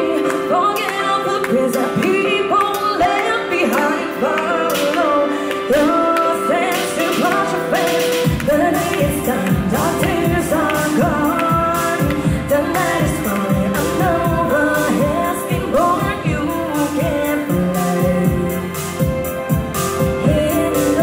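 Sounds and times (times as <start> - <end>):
keyboard: 0.0 - 21.0
woman singing into microphone: 0.0 - 21.0
steady beat: 6.8 - 21.0.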